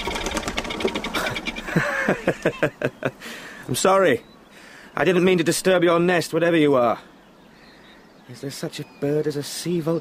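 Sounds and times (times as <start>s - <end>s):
bird wings flapping: 0.0s - 1.7s
man laughing: 1.1s - 3.5s.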